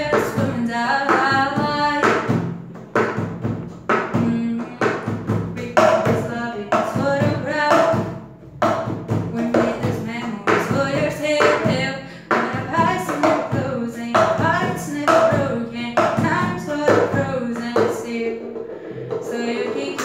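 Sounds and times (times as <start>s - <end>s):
woman singing: 0.0s - 2.4s, 4.1s - 8.2s, 9.2s - 18.4s, 19.2s - 20.0s.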